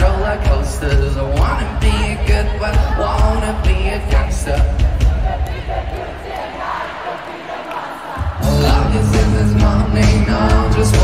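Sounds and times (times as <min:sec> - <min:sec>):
crowd noise: 0:00.0 - 0:11.0
live rock band playing: 0:08.2 - 0:11.0.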